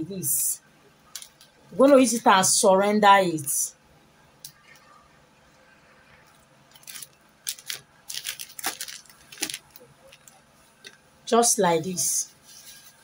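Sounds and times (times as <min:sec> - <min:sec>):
paper and plastic crinkling: 0:06.3 - 0:11.0, 0:12.4 - 0:13.0.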